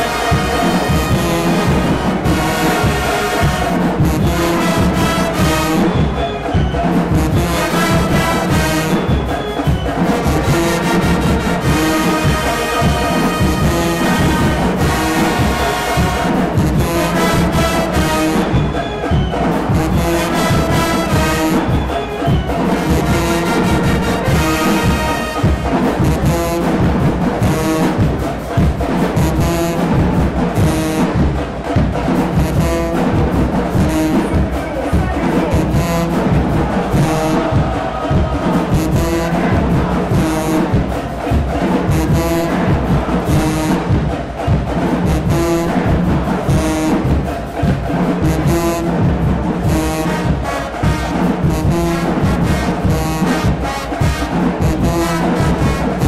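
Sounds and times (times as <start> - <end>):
marching band playing: 0.0 - 56.0.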